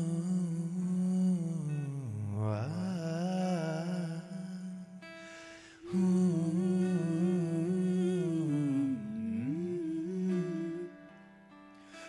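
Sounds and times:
acoustic guitar: 0.0s - 12.0s
person humming a melody: 5.8s - 11.1s.

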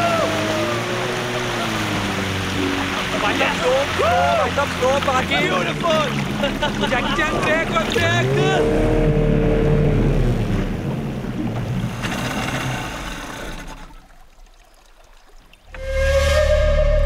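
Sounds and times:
people whooping and shouting: 0.0s - 1.8s, 3.7s - 4.7s
speedboat outboard engines: 0.0s - 17.0s
water wash: 0.0s - 17.0s.

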